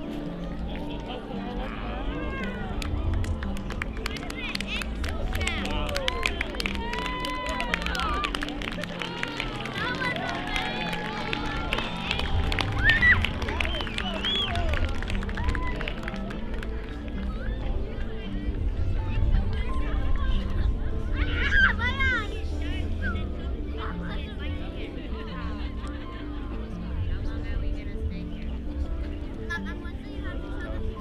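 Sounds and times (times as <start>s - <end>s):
background music with low notes: 0.0s - 31.0s
people clapping: 2.1s - 18.4s
crowd cheering and whooping: 4.7s - 16.5s.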